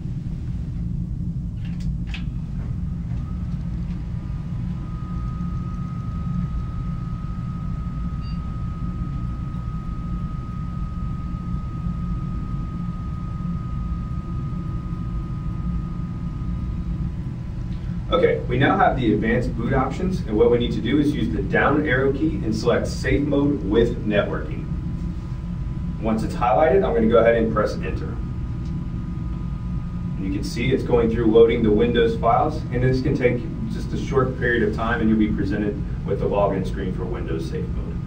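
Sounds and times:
desktop computer humming: 0.0s - 38.0s
thin high whine: 0.0s - 38.0s.

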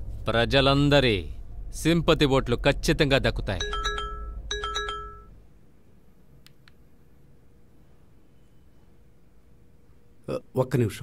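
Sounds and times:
bell-like chime: 3.6s - 5.3s.

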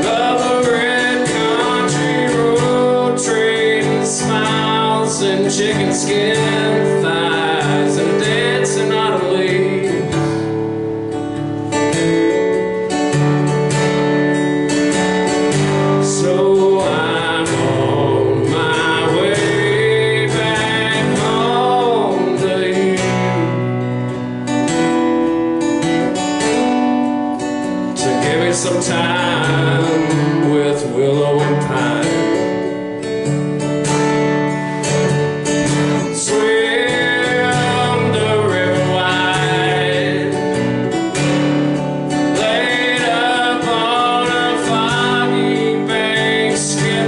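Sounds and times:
man singing: 0.0s - 10.5s, 15.6s - 23.6s, 27.9s - 32.9s, 35.7s - 41.5s, 42.1s - 47.0s
strummed acoustic guitar: 0.0s - 47.0s.

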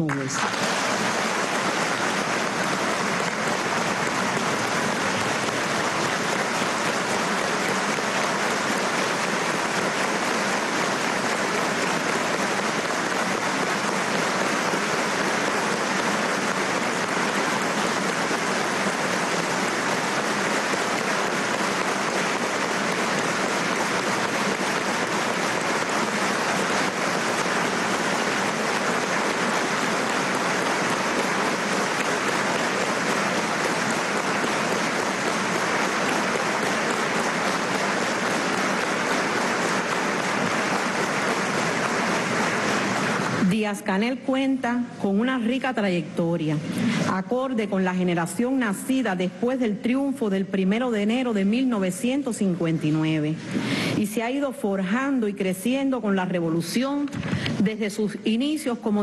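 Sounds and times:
large crowd applauding: 0.0s - 43.5s.

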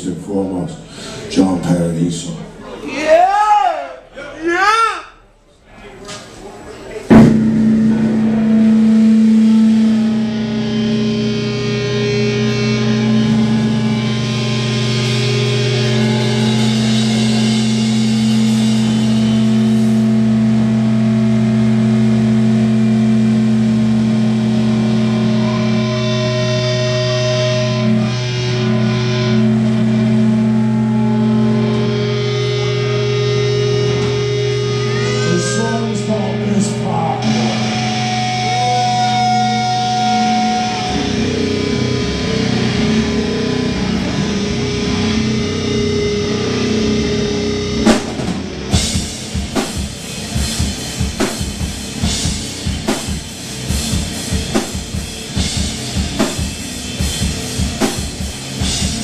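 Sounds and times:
cymbals ringing: 7.1s - 20.6s, 24.9s - 47.9s
electric guitars and bass chord: 7.1s - 59.0s
rock band playing: 7.1s - 59.0s.

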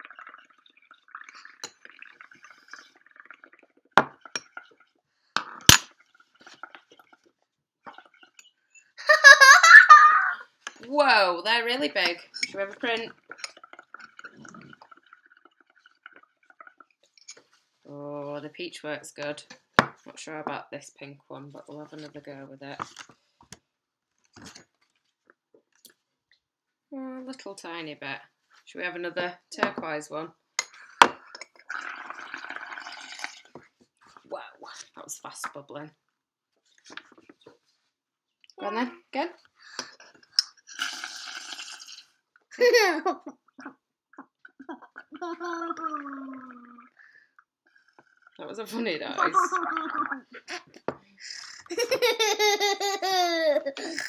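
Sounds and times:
soap bubbles bubbling and popping: 0.0s - 9.0s, 10.2s - 17.9s, 30.6s - 35.6s, 39.4s - 51.8s.

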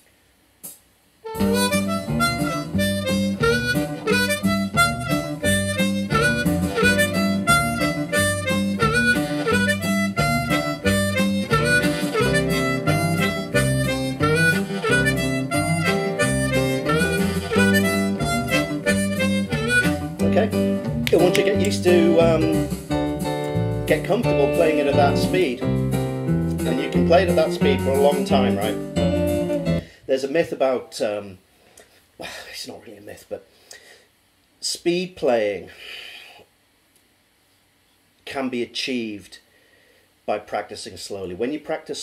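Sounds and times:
blues harmonica: 1.2s - 29.9s
blues backing track with guitar and bass: 1.3s - 29.9s.

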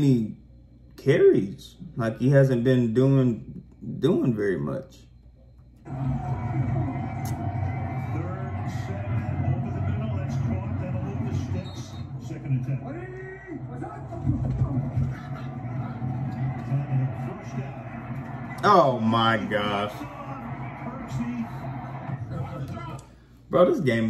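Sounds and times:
low rumble of stadium sound: 5.9s - 23.0s.

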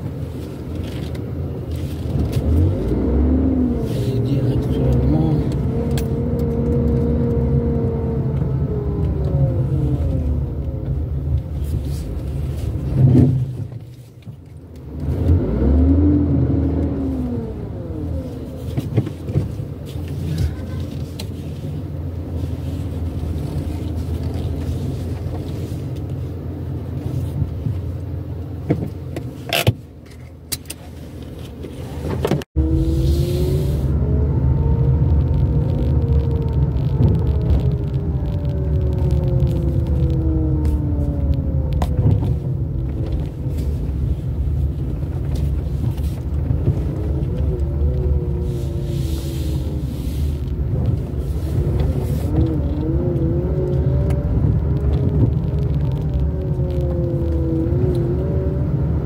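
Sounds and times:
car engine running: 30.9s - 59.0s.

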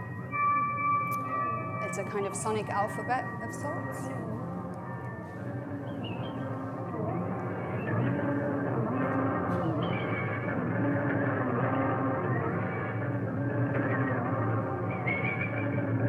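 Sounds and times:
electronic music with gliding tones: 0.0s - 16.0s.

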